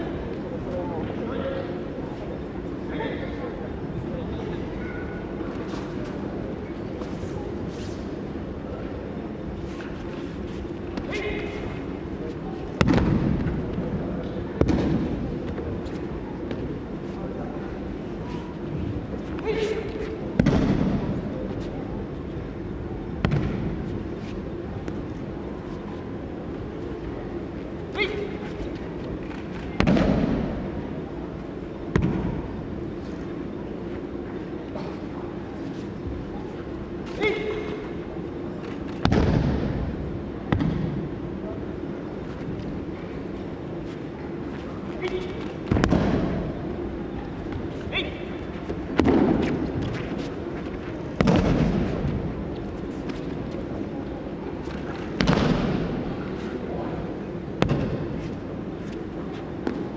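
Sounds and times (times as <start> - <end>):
large hall background noise: 0.0 - 59.9.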